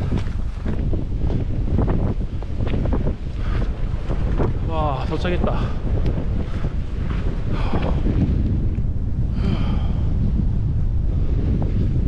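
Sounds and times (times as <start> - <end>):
footsteps on dirt trail: 0.0 - 9.0
wind buffeting microphone: 0.0 - 12.0.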